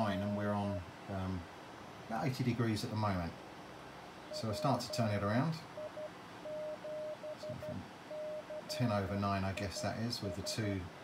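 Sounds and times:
morse code tone from radio speaker: 0.0s - 0.8s, 4.3s - 9.0s, 9.6s - 10.8s.

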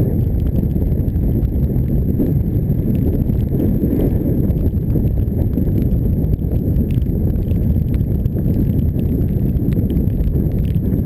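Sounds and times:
road vibration: 0.0s - 11.0s
wind buffeting microphone: 0.0s - 11.0s.

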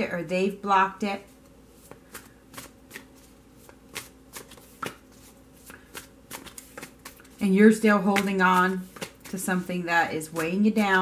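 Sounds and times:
cards being shuffled: 1.4s - 10.6s.

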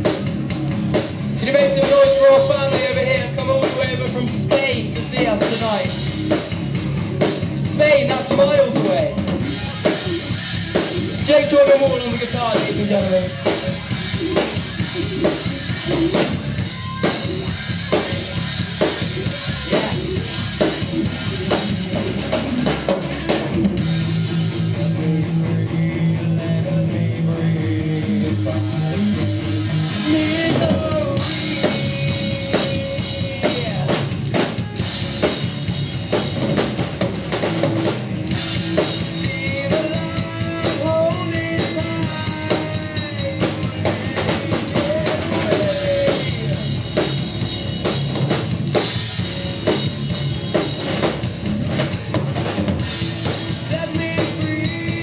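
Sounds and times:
bass guitar: 0.0s - 55.0s
drum kit: 0.0s - 55.0s
electric guitar: 0.0s - 55.0s.

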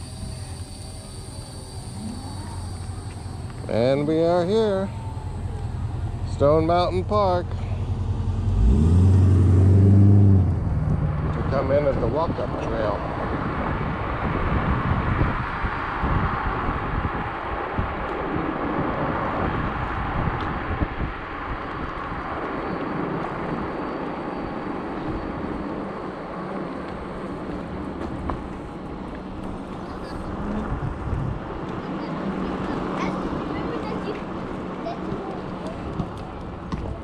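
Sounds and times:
tyre noise on asphalt: 0.0s - 37.0s
wind rush on microphone: 8.8s - 37.0s.

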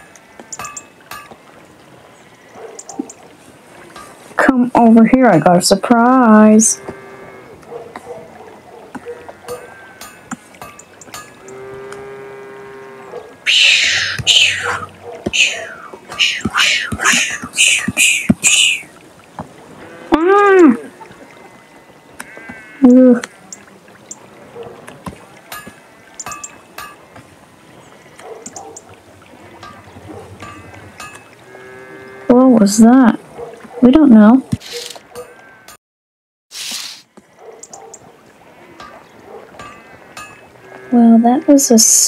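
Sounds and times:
faint clicks: 2.7s - 3.3s, 28.2s - 28.9s, 37.2s - 38.1s.

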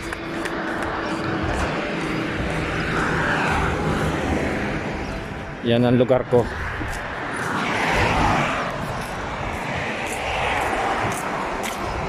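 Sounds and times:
cars passing on highway: 0.0s - 12.0s.

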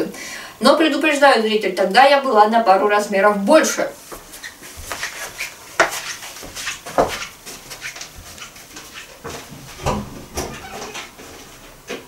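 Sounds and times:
rustling: 4.0s - 11.7s.

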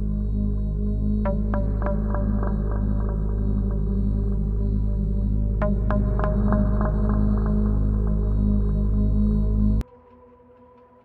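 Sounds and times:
ambient drone music: 0.0s - 11.0s.

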